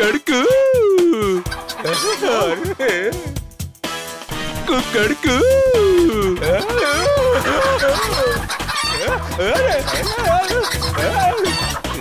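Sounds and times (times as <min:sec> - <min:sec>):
background music: 0:00.0 - 0:12.0
cartoon rooster clucking and squawking: 0:01.2 - 0:02.6, 0:05.4 - 0:12.0.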